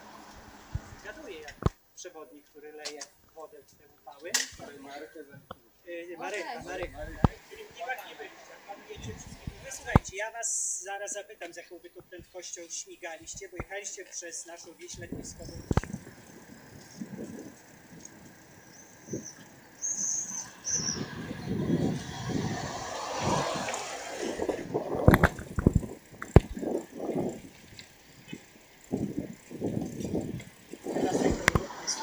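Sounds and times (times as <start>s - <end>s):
road and traffic noise: 0.0s - 1.7s, 14.8s - 32.0s
indistinct voices: 20.2s - 27.4s, 29.0s - 32.0s.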